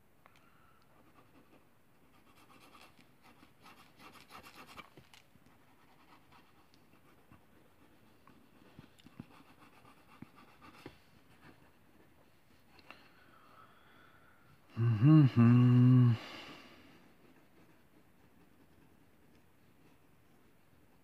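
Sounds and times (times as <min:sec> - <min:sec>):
pencil scratching on paper: 0:01.0 - 0:12.8, 0:17.0 - 0:21.0.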